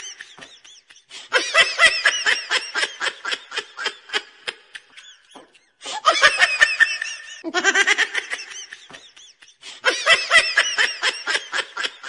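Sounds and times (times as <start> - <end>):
high-pitched laughter: 0.0 - 12.0
lower-pitched laugh: 0.0 - 12.0.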